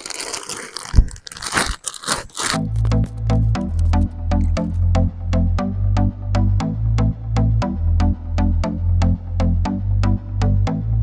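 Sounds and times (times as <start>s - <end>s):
plastic bag crinkling: 0.0s - 4.8s
electronic music with bass beat: 2.6s - 11.0s.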